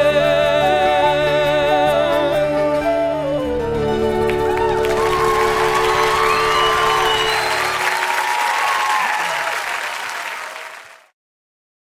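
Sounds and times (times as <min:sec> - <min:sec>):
audience applauding: 0:04.2 - 0:11.1.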